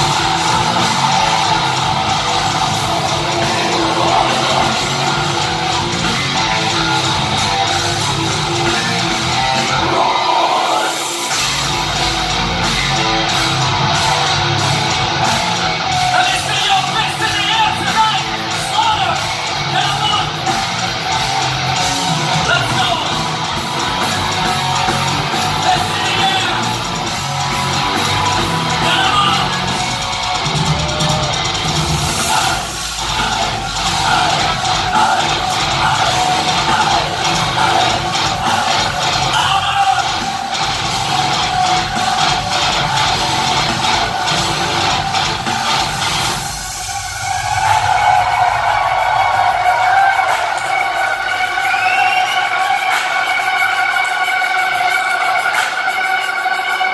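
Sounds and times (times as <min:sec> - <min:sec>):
drums: 0:00.0 - 0:56.9
metal band playing loud: 0:00.0 - 0:56.9.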